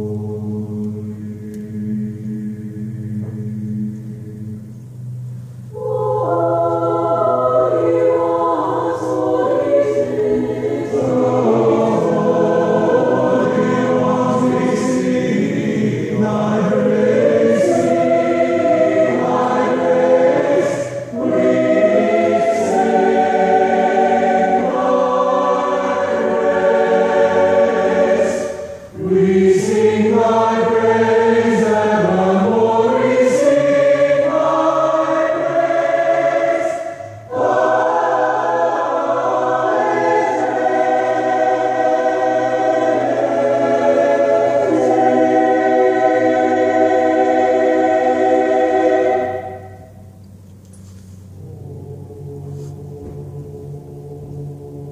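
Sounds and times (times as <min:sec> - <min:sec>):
choir singing sacred piece: 0:00.0 - 0:54.9.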